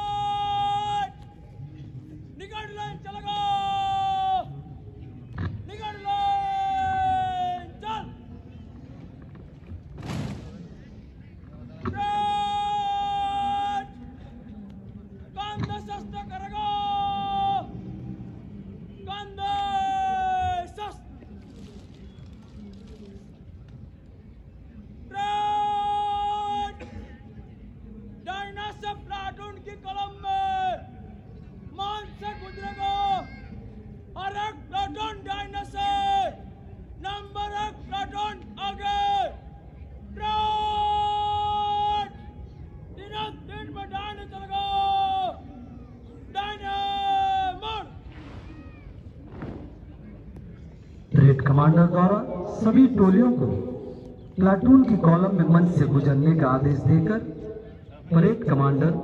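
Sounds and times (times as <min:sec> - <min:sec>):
man shouting commands: 0:00.0 - 0:01.2, 0:02.4 - 0:04.6, 0:05.7 - 0:08.2, 0:15.4 - 0:17.8, 0:19.0 - 0:21.0, 0:28.3 - 0:30.9, 0:31.8 - 0:33.4, 0:34.2 - 0:36.4, 0:37.0 - 0:39.4, 0:43.0 - 0:45.4, 0:51.2 - 0:59.0.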